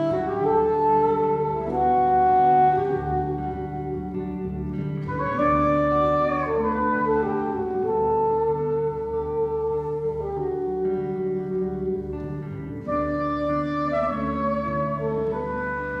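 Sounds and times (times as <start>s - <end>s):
double bass: 0.0s - 16.0s
jazz guitar: 0.0s - 16.0s
saxophone holding long notes: 0.0s - 16.0s.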